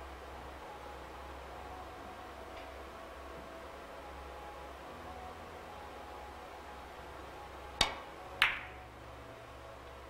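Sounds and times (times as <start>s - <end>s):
billiard balls colliding: 7.8s - 8.7s
cue striking ball: 7.8s - 8.7s.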